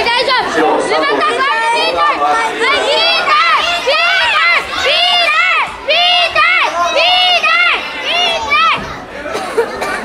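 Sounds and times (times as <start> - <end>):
spectators shouting encouragement: 0.0 - 9.3.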